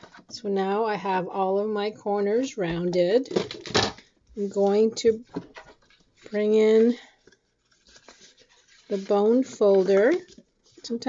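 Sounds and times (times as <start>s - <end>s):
paper rustling: 4.4s - 11.0s.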